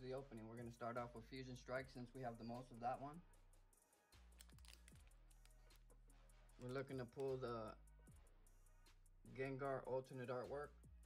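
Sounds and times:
faint background music: 0.0 - 11.0
foil pack crinkling: 4.4 - 5.0.

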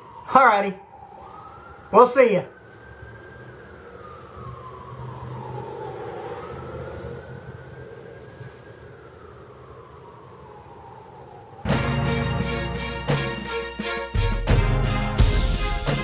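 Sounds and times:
distant siren wailing: 0.0 - 14.1.

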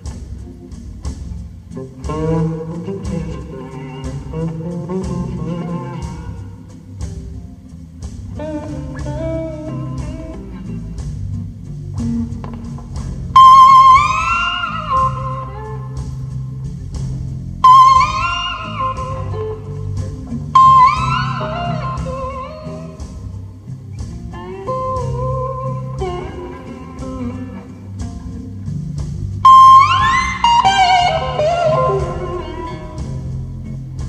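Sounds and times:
bass and drums: 0.0 - 34.0
electric slide guitar solo: 1.8 - 6.7, 8.4 - 11.0, 13.3 - 16.3, 17.6 - 23.5, 24.3 - 28.5, 29.4 - 33.9.

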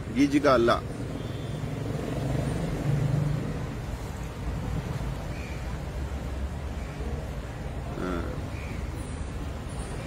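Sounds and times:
passing vehicle rumble: 0.0 - 10.0.

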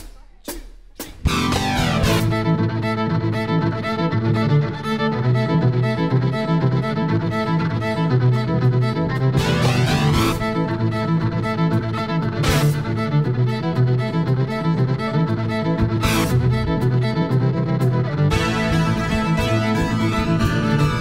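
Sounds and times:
drums: 0.0 - 2.5, 12.4 - 12.9, 15.8 - 21.0
bass guitar: 1.0 - 21.0
fiddle playing lead: 1.3 - 21.0
strummed acoustic guitar: 8.9 - 11.0, 12.2 - 13.1, 15.8 - 21.0.

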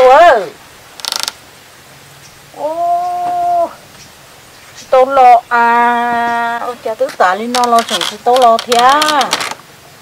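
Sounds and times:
woman calling out: 2.6 - 3.8.

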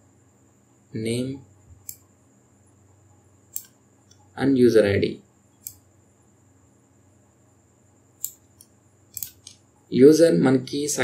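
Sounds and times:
computer mouse clicking: 1.8 - 2.1, 3.5 - 4.3, 5.6 - 5.8, 8.2 - 9.6.

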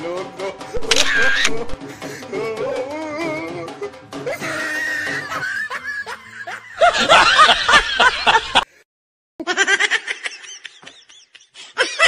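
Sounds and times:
rapid cackling laughter: 0.9 - 2.2, 4.3 - 8.7, 9.4 - 12.0.

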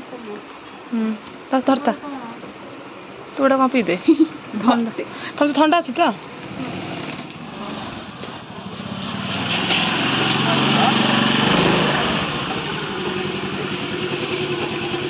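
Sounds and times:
motor scooter engine running: 6.6 - 15.0.

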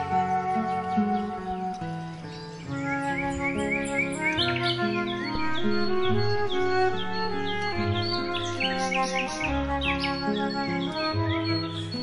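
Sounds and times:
instrumental background music: 0.0 - 12.0
bird chirping: 0.9 - 12.0.

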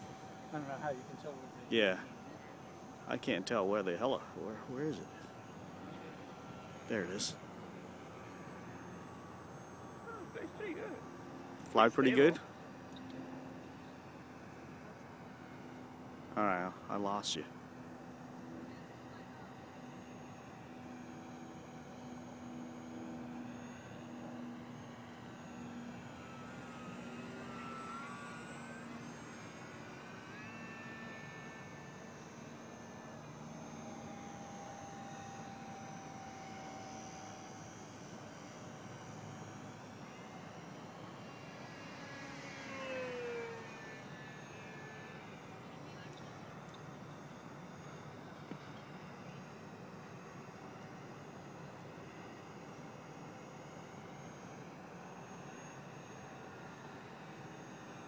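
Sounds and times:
model airplane motor whine: 0.0 - 58.0.

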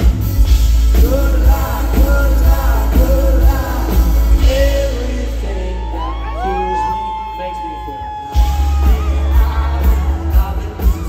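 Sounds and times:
deep bass: 0.0 - 6.6, 8.4 - 11.0.

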